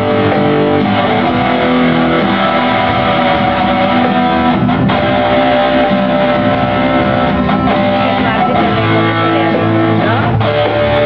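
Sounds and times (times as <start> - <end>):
guitars playing rock ballad: 0.0 - 11.0.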